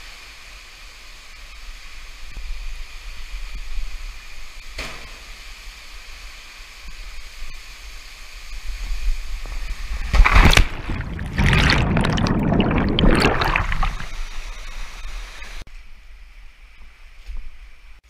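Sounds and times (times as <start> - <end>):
flowing water hiss: 0.0 - 15.7
wind rumble: 10.5 - 14.4.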